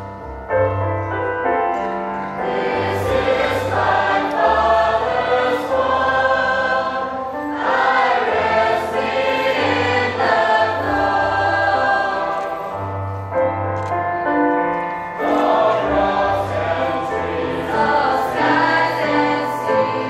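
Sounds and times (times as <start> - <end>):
choir singing a hymn: 2.3 - 13.5, 15.0 - 20.0.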